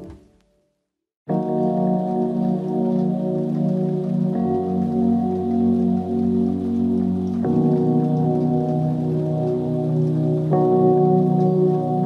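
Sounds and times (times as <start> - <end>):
rain-like crackle: 1.3 - 12.0.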